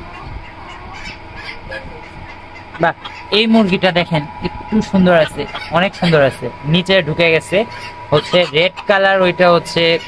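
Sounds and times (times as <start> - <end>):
poultry calling: 0.0 - 10.0.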